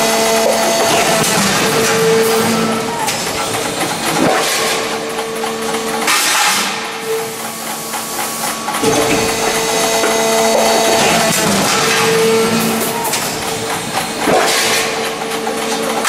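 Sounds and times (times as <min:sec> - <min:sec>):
machine hum: 0:00.0 - 0:16.0.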